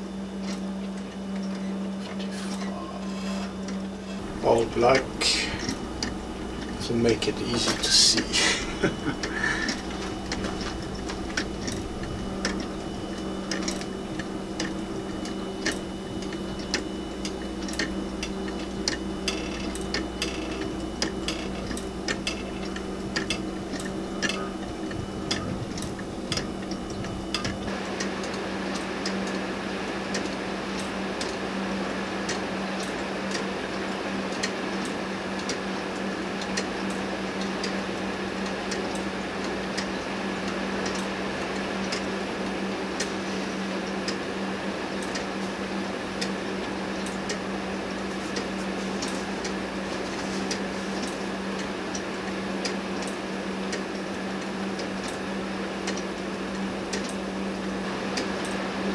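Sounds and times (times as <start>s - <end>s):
steady hiss: 4.2s - 14.9s
pendulum clock ticking: 9.2s - 27.6s.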